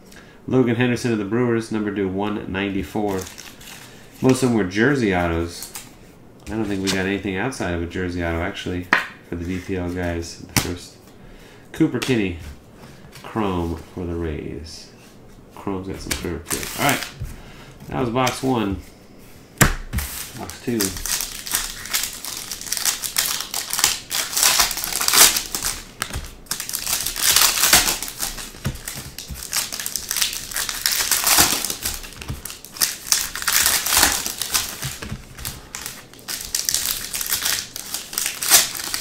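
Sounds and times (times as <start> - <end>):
foil wrappers crinkling and tearing: 3.0 - 4.5, 16.5 - 17.2, 20.1 - 39.0.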